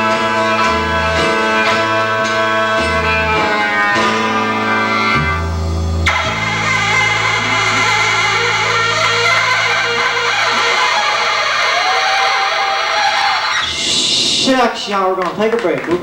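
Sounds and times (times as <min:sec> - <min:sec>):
applause: 0:15.1 - 0:16.0.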